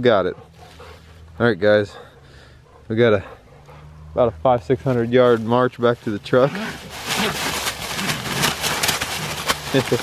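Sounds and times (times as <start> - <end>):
dry leaves rustling and scuffling: 4.7 - 10.0.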